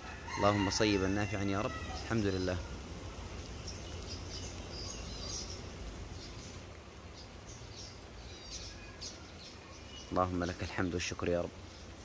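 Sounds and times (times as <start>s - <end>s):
small birds chirping: 0.4s - 12.0s.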